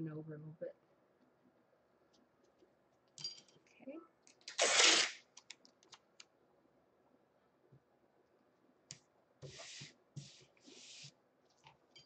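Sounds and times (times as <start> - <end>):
tape tearing: 4.4 - 5.3
small clicks and rustles: 5.3 - 6.3.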